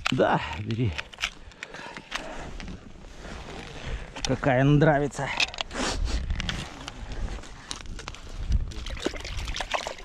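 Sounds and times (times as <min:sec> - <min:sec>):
faint rustling: 0:00.7 - 0:08.6
wind buffeting microphone: 0:06.0 - 0:09.6.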